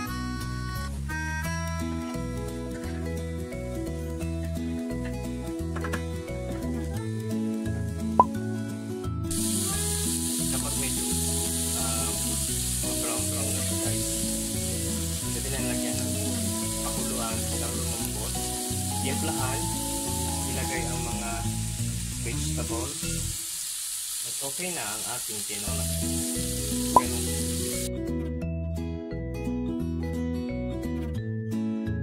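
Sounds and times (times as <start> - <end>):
background music: 0.0 - 23.4, 25.7 - 32.0
chicken sizzling in a wok: 6.2 - 8.2, 9.3 - 27.9.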